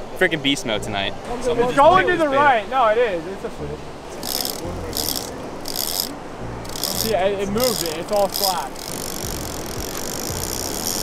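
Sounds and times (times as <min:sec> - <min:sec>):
fishing reel cranked by hand: 0:04.2 - 0:11.0.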